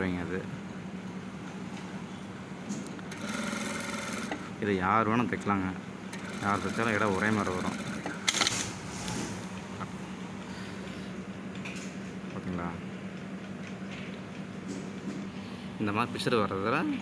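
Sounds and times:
sewing machine stitching: 3.1s - 4.5s, 6.1s - 8.8s.

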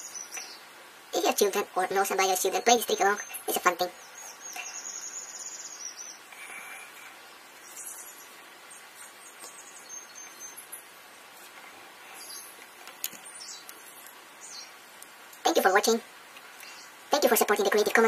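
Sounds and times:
faint hiss: 0.0s - 18.0s
small birds chirping: 0.0s - 18.0s.

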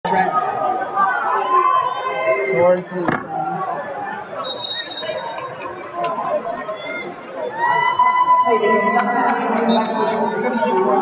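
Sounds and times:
crowd chatter in arena: 0.0s - 11.0s.

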